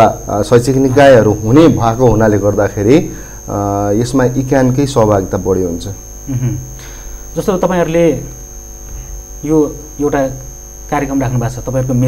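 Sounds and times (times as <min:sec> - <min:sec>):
man speaking: 0:00.0 - 0:06.0
electrical mains hum: 0:00.0 - 0:12.0
thin high whine: 0:00.0 - 0:12.0.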